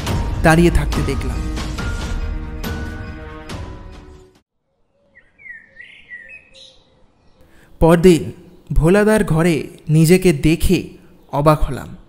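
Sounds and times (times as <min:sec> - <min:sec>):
faint bird chirps: 0:04.6 - 0:07.7.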